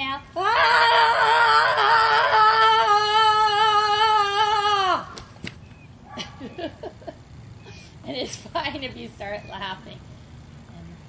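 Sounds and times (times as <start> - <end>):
woman yelling: 0.0 - 5.1.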